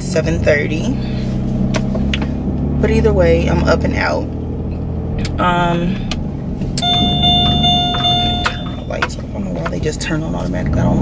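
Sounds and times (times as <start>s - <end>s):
road noise inside car: 0.0s - 11.0s
dashboard electronic beep: 6.8s - 9.2s.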